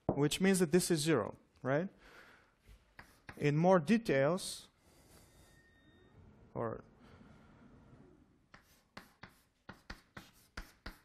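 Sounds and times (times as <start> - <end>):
handwriting strokes: 2.7 - 3.6, 8.5 - 11.0.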